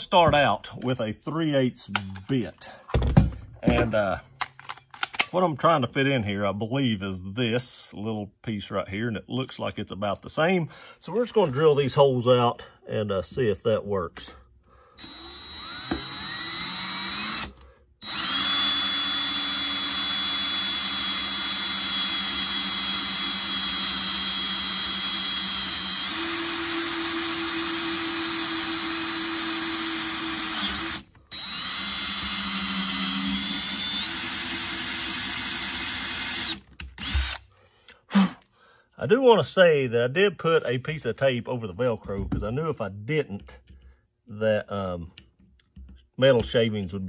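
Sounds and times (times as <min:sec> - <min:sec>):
cordless drill whining through metal: 0:15.0 - 0:37.5.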